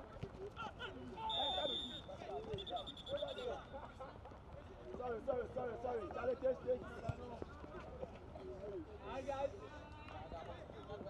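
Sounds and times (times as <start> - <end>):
referee's whistle blasts: 1.3 - 3.5.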